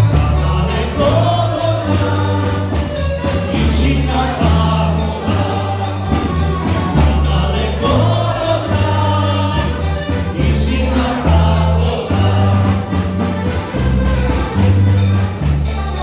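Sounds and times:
person singing: 0:00.0 - 0:13.2
dance band playing: 0:00.0 - 0:16.0.

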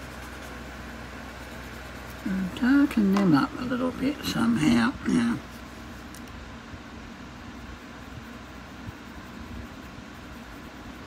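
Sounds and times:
room hum and hiss: 0:00.0 - 0:11.0.

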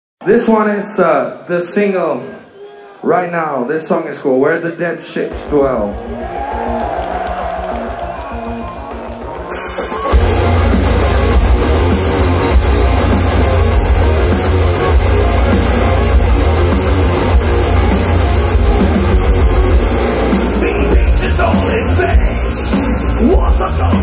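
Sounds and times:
heavy metal band playing live: 0:05.3 - 0:24.0
keyboard-like notes: 0:08.4 - 0:24.0.

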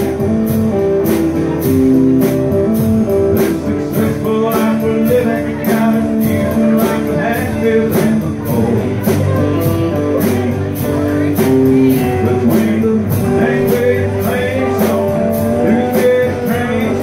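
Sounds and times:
bass line: 0:00.0 - 0:17.0
electric guitar: 0:00.0 - 0:17.0
steady drum beat: 0:00.0 - 0:17.0
strummed acoustic guitar: 0:00.0 - 0:17.0.

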